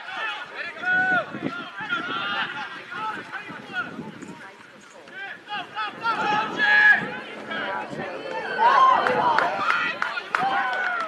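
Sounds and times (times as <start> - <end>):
people shouting: 0.0 - 3.9, 5.2 - 11.0.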